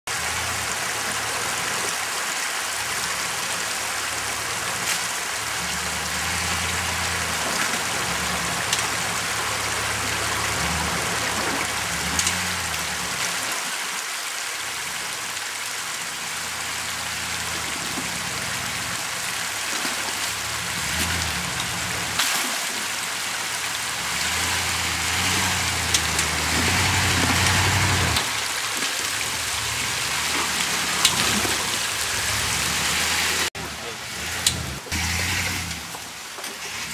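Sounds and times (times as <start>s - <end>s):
running creek water: 0.1s - 36.9s
truck engine running at low revs: 3.1s - 13.4s, 16.2s - 22.2s, 23.2s - 36.9s
pickup engine under load: 23.8s - 36.9s.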